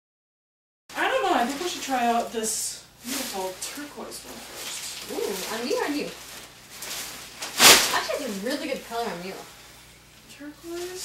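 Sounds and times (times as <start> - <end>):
cape fabric swishing: 3.0 - 8.3.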